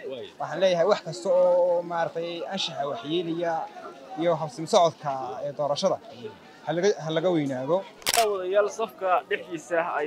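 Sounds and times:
men speaking: 0.0s - 10.0s.

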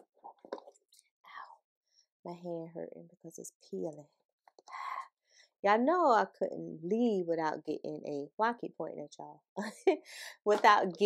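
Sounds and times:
woman whispering: 4.6s - 5.1s.

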